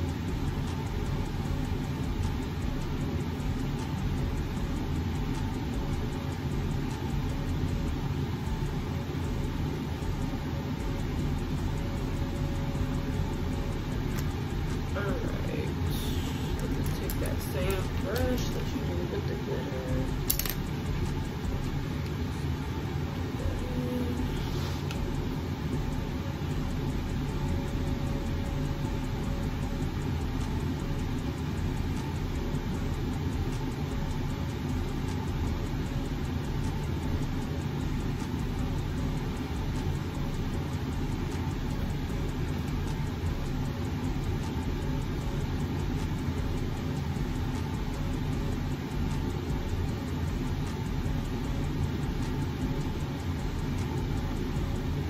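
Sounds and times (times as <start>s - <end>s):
low hum and hiss: 0.0s - 55.0s.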